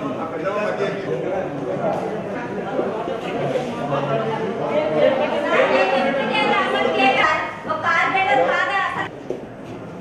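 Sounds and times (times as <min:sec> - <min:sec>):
overlapping indistinct chatter: 0:00.0 - 0:10.0.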